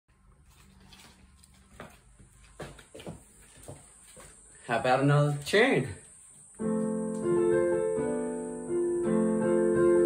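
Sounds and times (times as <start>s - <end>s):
faint shuffling: 0.2s - 7.2s.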